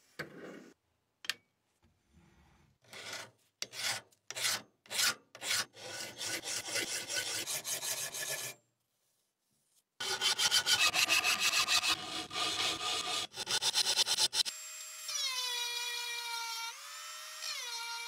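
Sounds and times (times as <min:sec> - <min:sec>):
hand file scraping steel blade: 0:02.8 - 0:08.6, 0:10.0 - 0:14.5.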